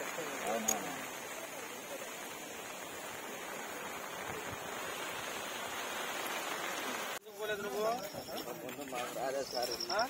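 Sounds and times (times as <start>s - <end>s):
heavy rain falling: 0.0s - 10.0s.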